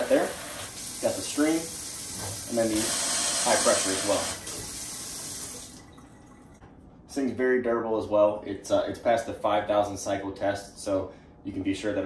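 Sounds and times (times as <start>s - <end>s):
water running into steel sink: 0.0s - 6.2s.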